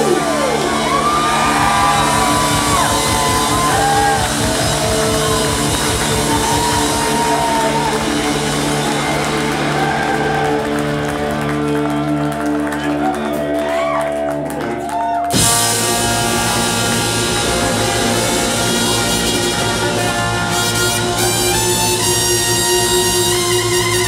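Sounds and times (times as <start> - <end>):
ska band playing live: 0.0 - 13.6, 15.3 - 24.0
crowd shouting and whooping: 0.0 - 24.0.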